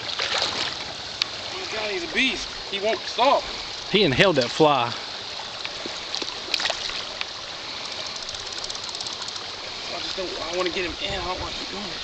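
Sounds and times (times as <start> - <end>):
stream running over rocks: 0.0 - 12.0
faint clicks: 5.6 - 9.5
rapid fine ticking: 7.8 - 9.5.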